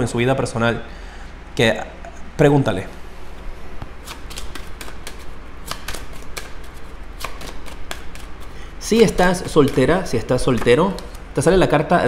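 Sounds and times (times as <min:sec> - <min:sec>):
cards being shuffled: 0:03.8 - 0:11.2.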